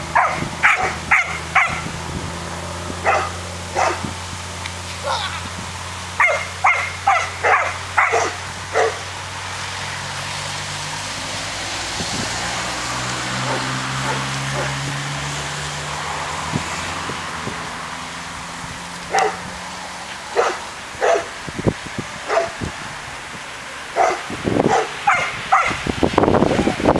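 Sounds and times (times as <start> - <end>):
dog barking: 0.2 - 1.9, 3.0 - 4.1, 5.0 - 5.2, 6.2 - 9.0, 13.4 - 14.8, 19.1 - 19.4, 20.3 - 21.3, 22.3 - 22.6, 24.0 - 25.8.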